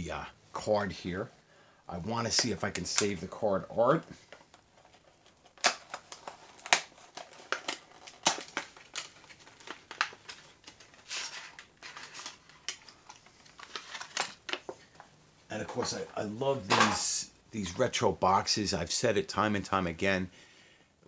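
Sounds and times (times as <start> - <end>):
plastic packaging crinkling: 4.2 - 15.0.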